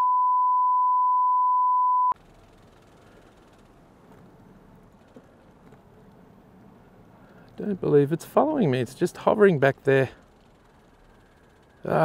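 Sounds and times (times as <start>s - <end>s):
censor bleep: 0.0s - 2.2s.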